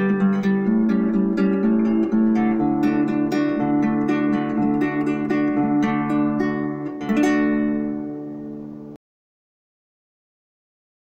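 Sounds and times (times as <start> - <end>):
acoustic guitar picking: 0.0 - 9.0
ringing final guitar chord: 0.0 - 9.0.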